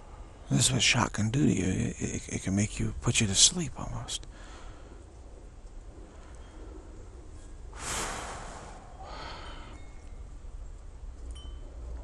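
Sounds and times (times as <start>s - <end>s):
steady low hum: 0.0s - 12.0s
rush of noise: 7.6s - 10.0s.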